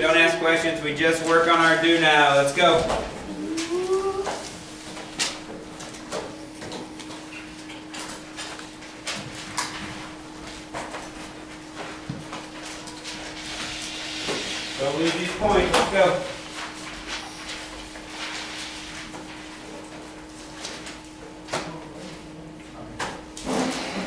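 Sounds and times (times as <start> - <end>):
steady hum: 0.0 - 24.0.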